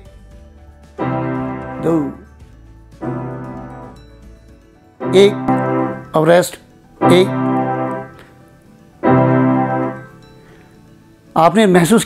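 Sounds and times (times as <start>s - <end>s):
electronic keyboard low notes: 1.0s - 2.4s, 3.0s - 4.4s, 5.0s - 10.7s.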